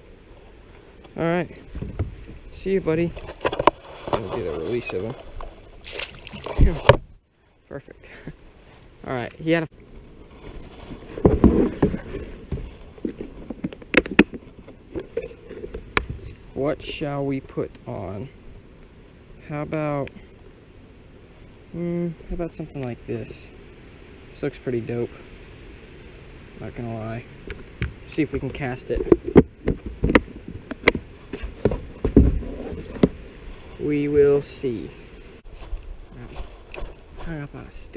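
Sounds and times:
knocks against kayak hull: 0:29.0 - 0:33.2.

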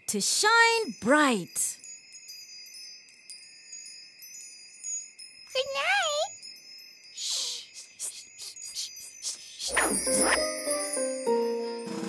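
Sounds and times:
cartoon twinkle chimes: 0:00.4 - 0:12.0.

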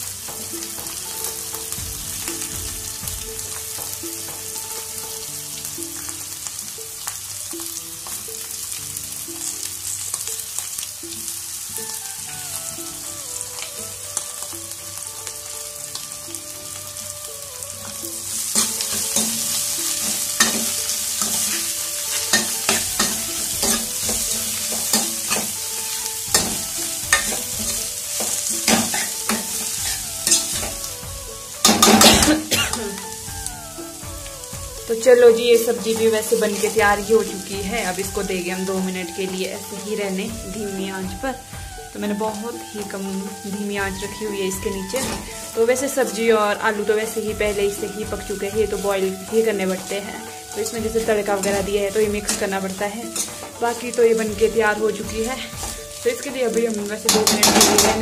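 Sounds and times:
vegetables sizzling in hot oil: 0:00.0 - 0:58.0
steel ladle scraping pan: 0:11.2 - 0:33.3, 0:35.0 - 0:40.2, 0:44.7 - 0:58.0.

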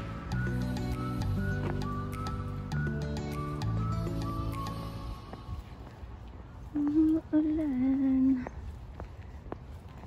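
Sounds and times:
background music: 0:00.0 - 0:05.9
faint outdoor ambience: 0:00.0 - 0:10.0.

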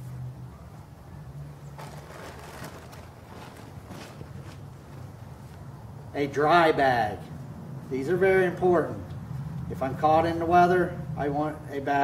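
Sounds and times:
rummaging through fabric backpack: 0:01.8 - 0:05.1.

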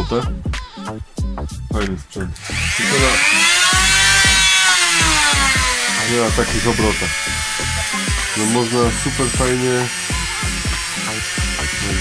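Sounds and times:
electronic beat music: 0:00.3 - 0:12.0
rotary grinder motor whine: 0:02.4 - 0:12.0.

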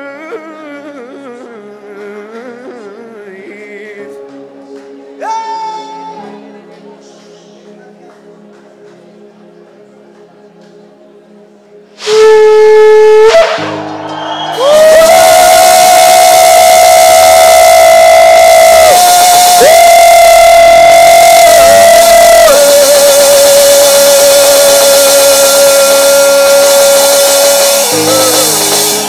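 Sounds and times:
background music chords: 0:00.0 - 0:29.0.

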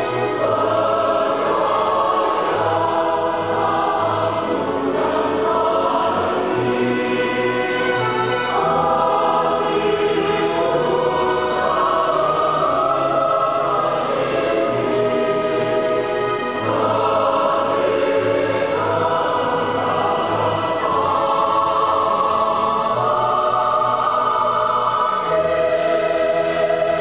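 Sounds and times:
choir singing a hymn: 0:00.0 - 0:27.0.

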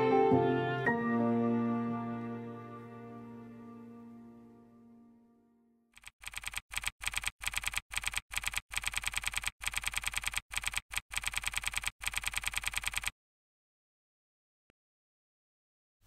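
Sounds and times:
background music: 0:00.0 - 0:05.6
keyboard typing clicks: 0:06.0 - 0:13.1.

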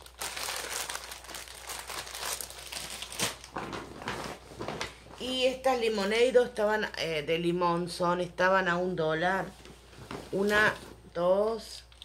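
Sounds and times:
plastic packaging crinkling: 0:00.0 - 0:05.4.

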